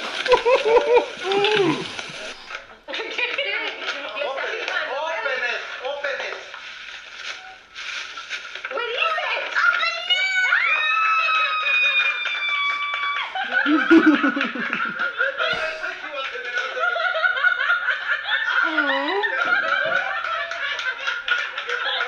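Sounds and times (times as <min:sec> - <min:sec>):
people talking: 0:00.3 - 0:06.5, 0:08.7 - 0:12.1, 0:13.6 - 0:17.8, 0:18.5 - 0:20.8.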